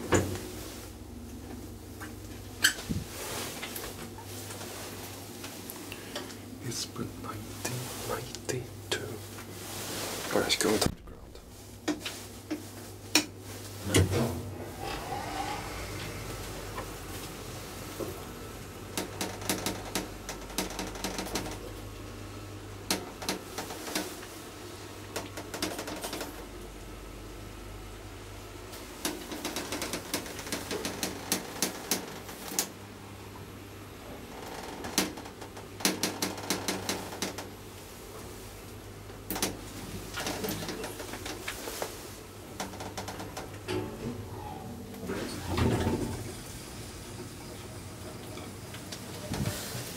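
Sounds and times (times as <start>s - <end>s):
elevator low hum: 0.0s - 49.9s
rapid clicking and rattling: 18.9s - 21.7s, 25.1s - 26.4s, 29.0s - 32.7s, 34.5s - 37.5s.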